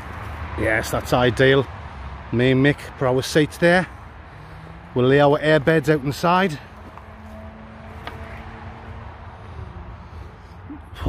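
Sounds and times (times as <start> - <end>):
distant traffic rumble: 0.0 - 11.0.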